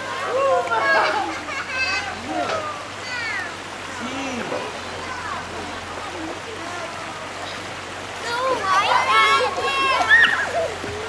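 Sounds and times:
children's voices: 0.0 - 11.0
river water rushing: 0.0 - 11.0.

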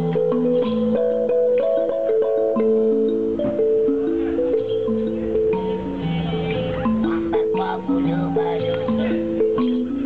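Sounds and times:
toy instrument tune: 0.0 - 10.0.

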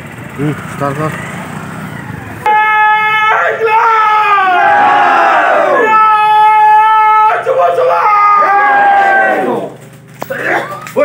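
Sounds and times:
men shouting together: 2.4 - 10.8.

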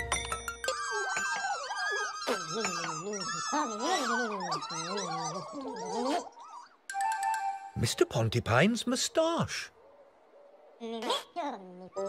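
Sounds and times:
wordless babbling voices: 0.7 - 6.7.

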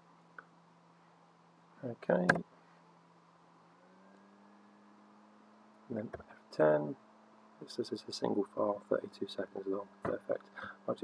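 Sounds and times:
faint low electrical hum: 0.0 - 11.0.

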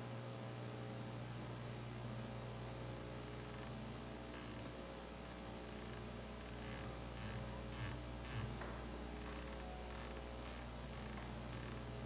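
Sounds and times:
background hiss: 0.0 - 12.0
low electrical hum: 0.0 - 12.0.

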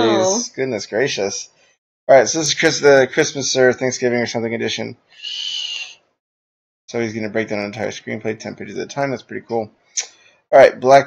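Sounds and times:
steady high tone: 0.0 - 0.5.

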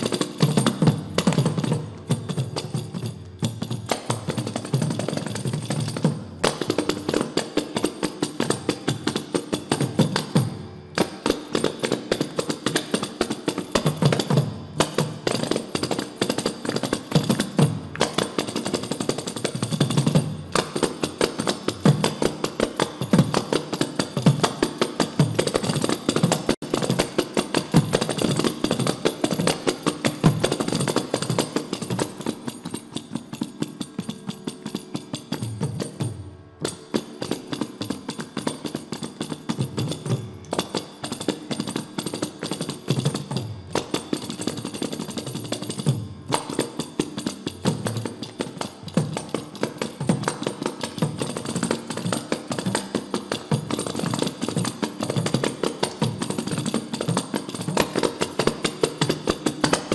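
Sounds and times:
frame drums played with fingers: 0.0 - 59.9.

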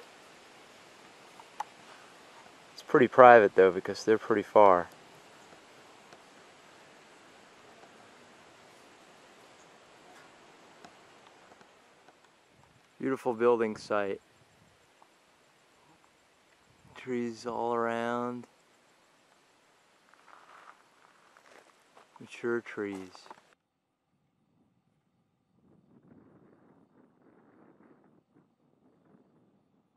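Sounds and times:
faint outdoor hiss: 0.0 - 29.9.

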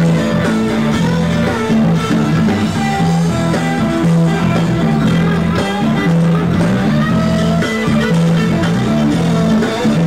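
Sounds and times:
electric guitar: 0.0 - 10.0
live rock band playing: 0.0 - 10.0.

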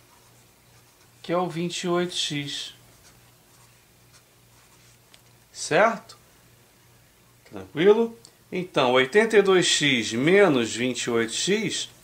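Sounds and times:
pen scratching on paper: 0.0 - 1.2, 2.9 - 5.0.

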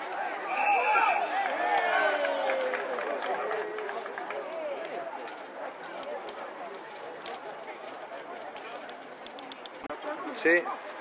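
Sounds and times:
voices shouting: 0.0 - 3.8.

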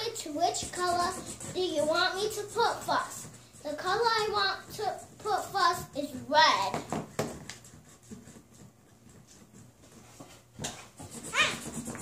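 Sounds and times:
child's high wavering voice: 0.0 - 6.8, 11.2 - 11.8
faint taps and rustles: 4.6 - 11.1.

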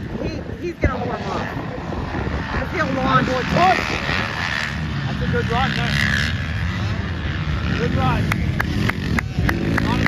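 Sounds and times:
dirt bike engines revving: 0.0 - 10.0
voices: 0.0 - 10.0.

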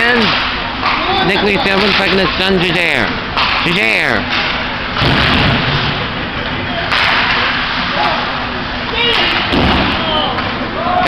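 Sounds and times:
crowd noise: 0.0 - 11.0
hockey sticks and puck knocking: 0.3 - 2.7, 6.9 - 8.2.

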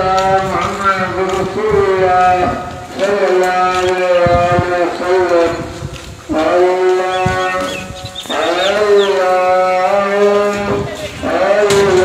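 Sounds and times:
man singing held notes: 6.3 - 12.0.

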